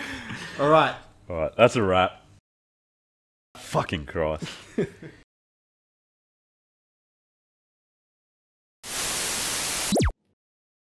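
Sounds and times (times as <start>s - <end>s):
tv static hiss: 8.9s - 10.1s.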